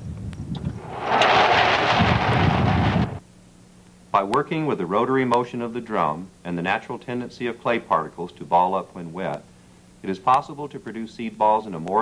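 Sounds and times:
loud rushing noise: 0.6s - 3.2s
rotary drum motor rumble: 0.6s - 3.2s.

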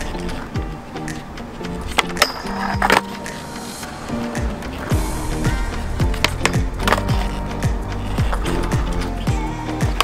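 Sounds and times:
skateboard clacking on rail: 0.0s - 3.5s, 6.1s - 7.4s
music with sliding deep bass: 0.0s - 10.0s
skateboard wheels rolling on concrete: 0.0s - 10.0s.

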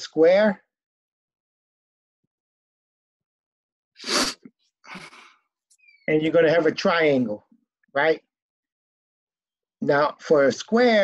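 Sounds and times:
person sneezing: 4.0s - 5.2s.

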